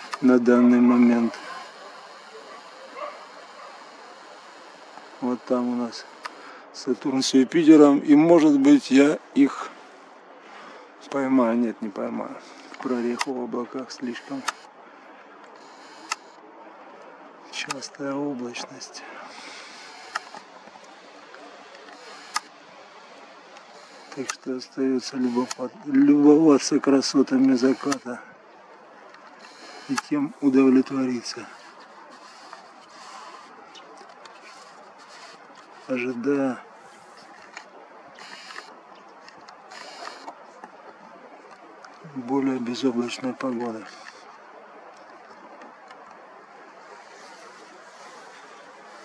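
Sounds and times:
faint background noise: 0.0 - 49.0
outdoor background hiss: 0.0 - 49.0
camera zoom motor whirring: 1.2 - 6.4, 14.1 - 14.7, 15.5 - 16.4, 19.4 - 24.4, 25.2 - 25.7, 27.3 - 28.1, 29.3 - 30.5, 31.5 - 35.9, 37.1 - 40.5
small clicks: 15.4 - 16.4, 19.8 - 22.6.

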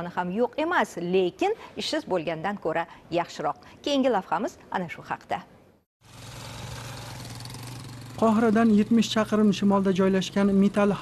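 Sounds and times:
engine humming with hiss: 6.0 - 11.0.

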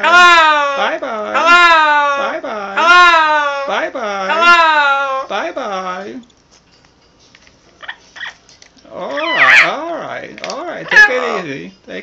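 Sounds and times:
parrot warbling call: 7.8 - 8.4, 9.0 - 9.8, 10.9 - 11.4.

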